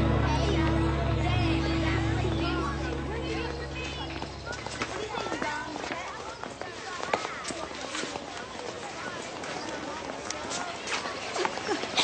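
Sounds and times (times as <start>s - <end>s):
busy outdoor ambience: 0.0s - 12.0s
indistinct background voices: 0.0s - 12.0s.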